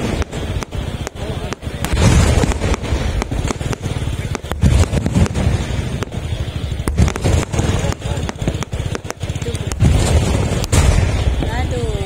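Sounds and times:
fireworks bangs and crackles: 0:00.0 - 0:12.0
low rumble: 0:00.0 - 0:12.0.

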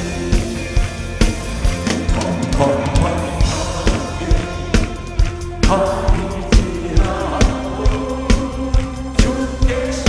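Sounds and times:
drum kit steady beat: 0:00.0 - 0:10.0
worship band playing: 0:00.0 - 0:10.0.

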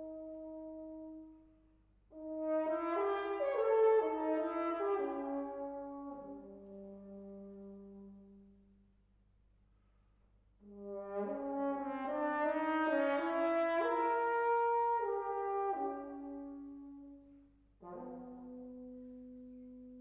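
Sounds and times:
solo french horn: 0:00.0 - 0:20.0.

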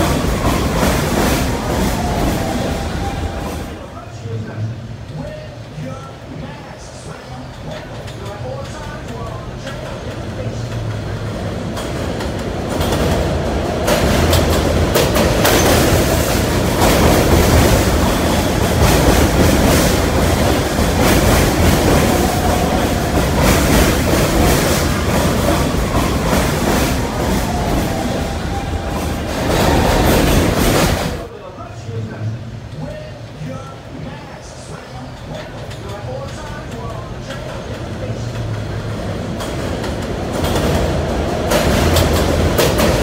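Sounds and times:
subway train rumble: 0:00.0 - 0:43.0.

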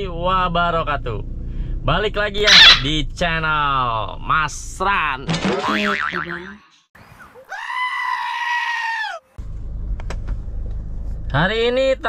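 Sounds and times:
car engine idling: 0:00.0 - 0:05.1, 0:09.4 - 0:12.0
shrill high cry: 0:02.4 - 0:02.9, 0:07.4 - 0:09.3.

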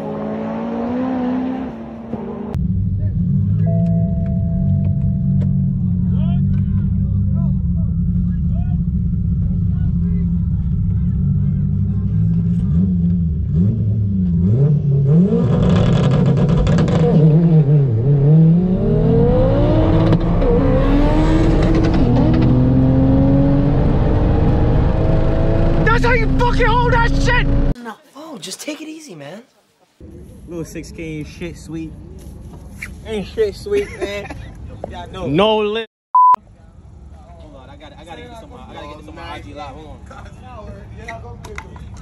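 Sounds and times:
turbocharged car engine accelerating: 0:00.0 - 0:27.8.

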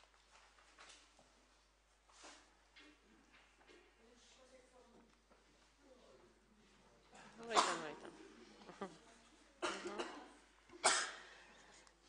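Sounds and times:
person coughing: 0:07.4 - 0:08.0, 0:09.6 - 0:11.3.

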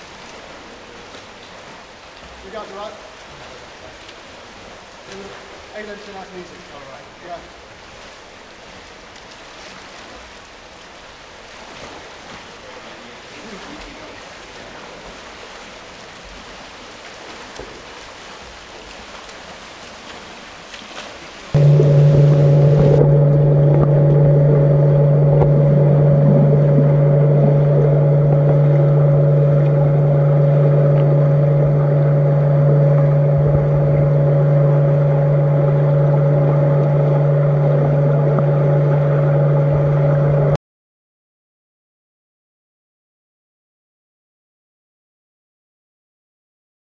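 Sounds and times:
swimmers splashing: 0:00.0 - 0:40.5
underwater low hum: 0:00.0 - 0:40.6
underwater rushing water: 0:00.0 - 0:40.6.

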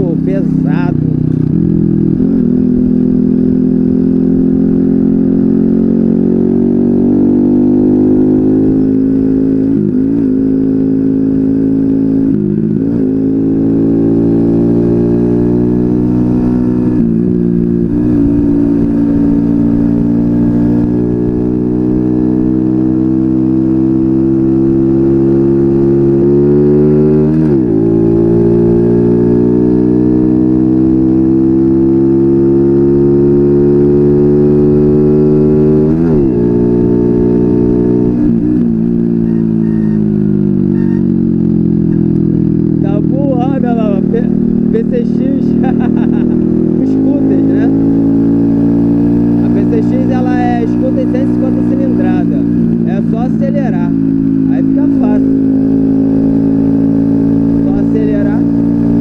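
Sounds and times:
moped engine running: 0:00.0 - 0:59.0.

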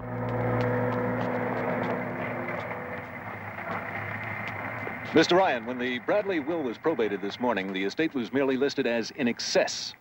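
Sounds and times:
vehicle engine running: 0:00.0 - 0:08.6.

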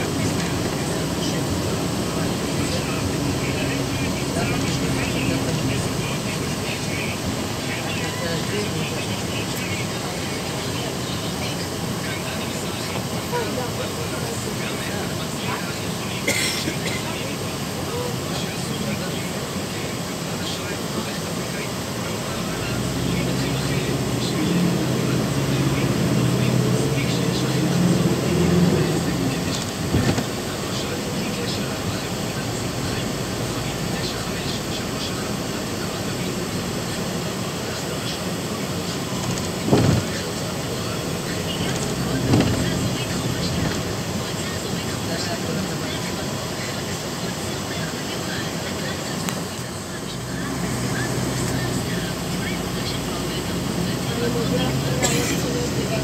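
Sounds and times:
low engine hum: 0:00.0 - 0:56.0
road and engine noise: 0:00.0 - 0:56.0.

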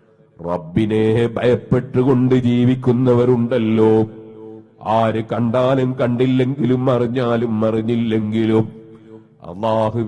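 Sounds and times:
man chanting a melodic refrain: 0:00.4 - 0:10.0.

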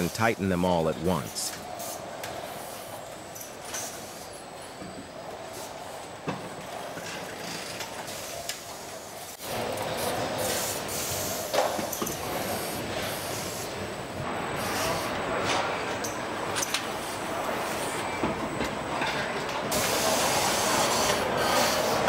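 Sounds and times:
machinery and air noise: 0:00.0 - 0:22.0.

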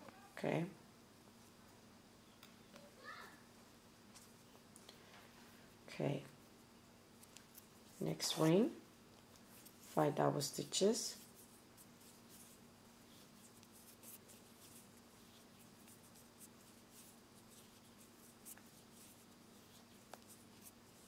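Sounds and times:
soft clicks and thread rustles: 0:07.1 - 0:10.0, 0:11.2 - 0:21.0.

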